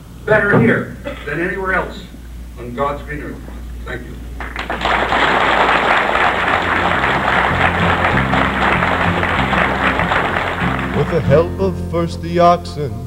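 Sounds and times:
audience applauding: 4.3s - 11.5s
instrumental song with bass notes: 6.6s - 13.0s.

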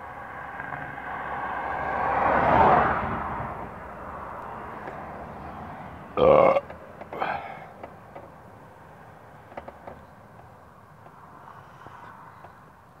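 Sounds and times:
steady background noise: 3.4s - 13.0s
throaty vocal sound: 6.2s - 7.7s.

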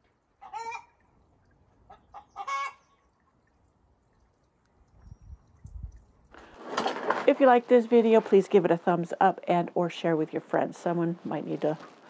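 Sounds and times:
chicken clucking: 0.4s - 0.9s, 1.9s - 2.8s.

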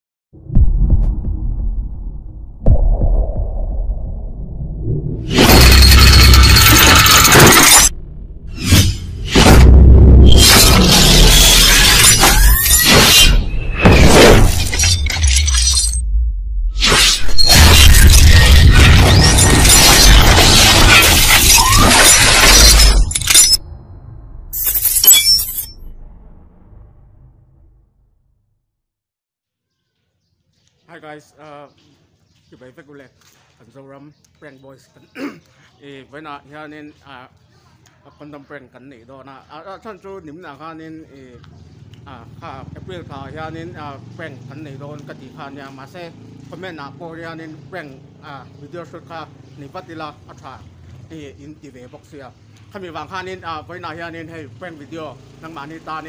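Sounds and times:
deep bass: 0.4s - 5.3s, 7.9s - 11.1s, 16.0s - 16.8s
deep booms: 0.4s - 5.4s, 7.9s - 10.9s
loud crashing and shattering: 5.3s - 7.9s, 9.2s - 16.0s, 16.8s - 23.6s.

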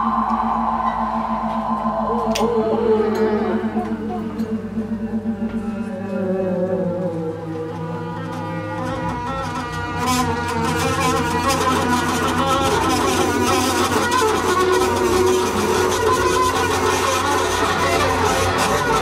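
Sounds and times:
bowed double basses: 0.0s - 19.0s
saxophone: 0.0s - 19.0s.

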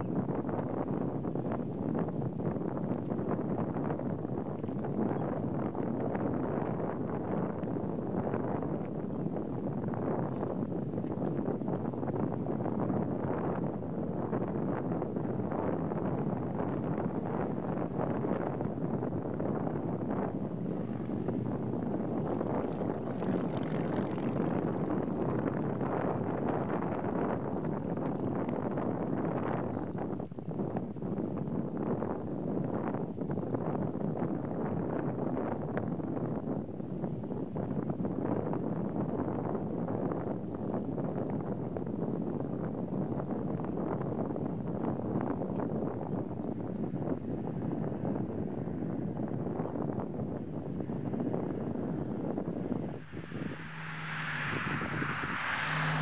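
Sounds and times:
wind blowing across microphone: 0.0s - 56.0s.

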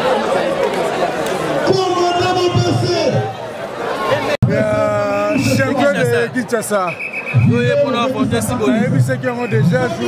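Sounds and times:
crowd chatter: 0.0s - 10.0s
people talking: 4.4s - 10.0s.

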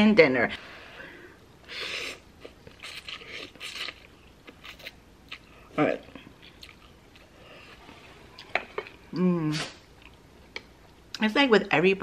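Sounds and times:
soft eating mouth sounds: 1.8s - 11.2s.

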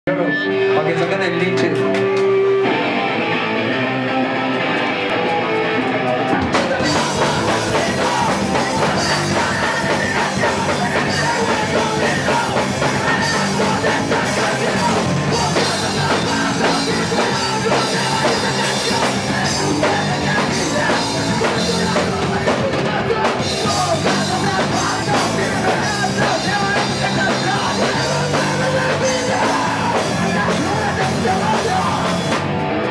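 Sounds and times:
bass guitar: 0.1s - 32.9s
electric guitars playing riff: 0.1s - 32.9s
drums: 0.2s - 32.9s.

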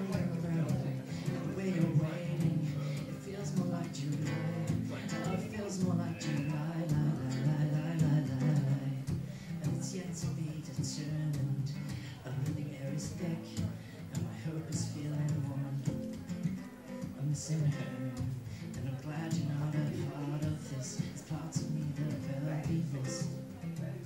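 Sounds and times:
acoustic guitar strumming: 0.0s - 24.0s.

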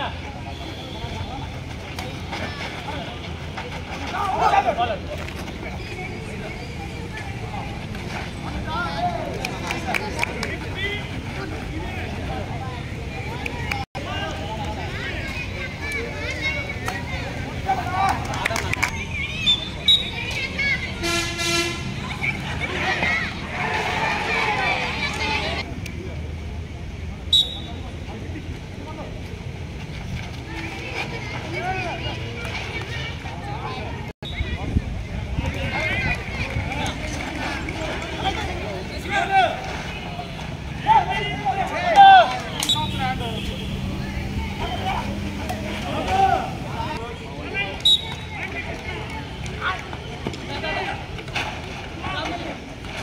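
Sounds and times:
faint voices: 0.0s - 53.0s
horn toot: 21.0s - 22.0s
people shouting: 22.1s - 25.6s, 40.7s - 47.0s.

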